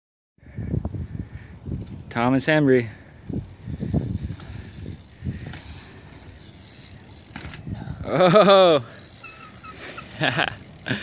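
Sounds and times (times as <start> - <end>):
bike tyre and chain noise: 0.4 - 11.0
bike mechanical clicking: 3.2 - 11.0.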